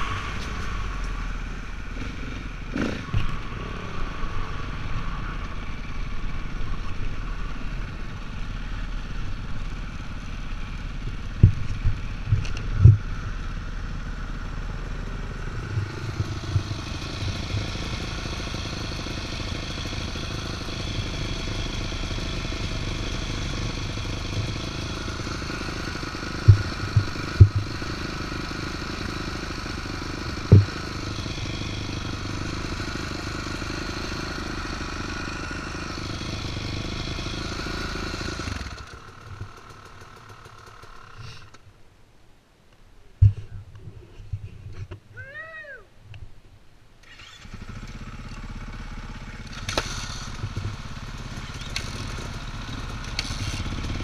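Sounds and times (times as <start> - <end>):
off-road vehicle engine running: 0.0 - 41.6, 47.0 - 54.0.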